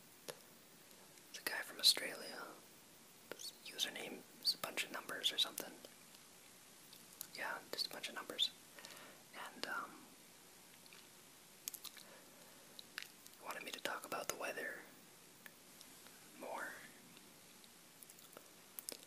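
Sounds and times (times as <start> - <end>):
person whispering: 1.3 - 2.6, 3.3 - 5.9, 7.3 - 8.6, 9.3 - 10.1, 13.4 - 14.9, 16.3 - 17.0.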